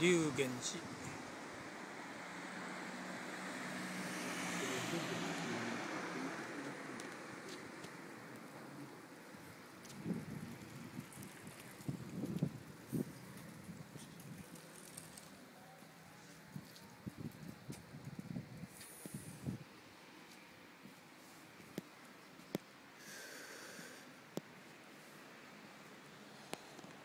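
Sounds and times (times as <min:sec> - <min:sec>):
car passing: 0:00.0 - 0:15.6.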